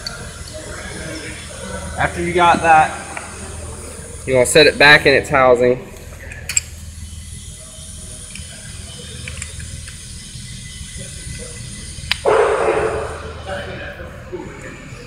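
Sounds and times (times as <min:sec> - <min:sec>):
low workshop hum: 0:00.0 - 0:15.0.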